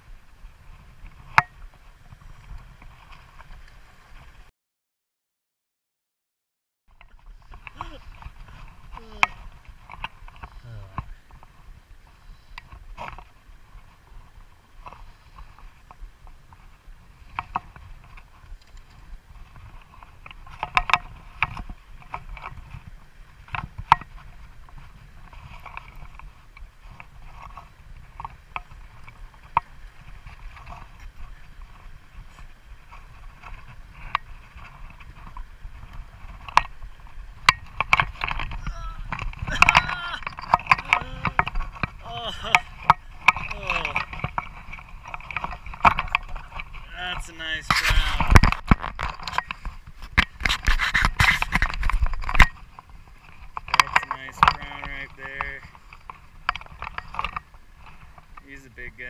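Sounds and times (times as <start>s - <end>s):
sharp clicks and splashes: 12.1s - 59.0s.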